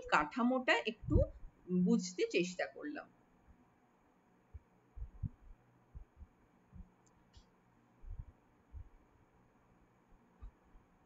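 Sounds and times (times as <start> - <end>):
soft low thumps: 1.0 - 1.6, 4.5 - 7.0, 8.0 - 9.0.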